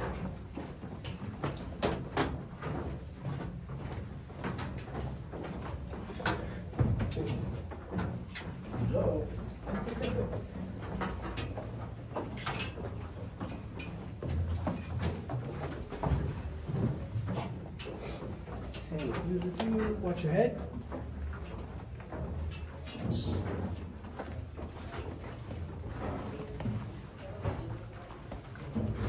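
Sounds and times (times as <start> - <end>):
footsteps going down stairs: 0.0 - 29.0.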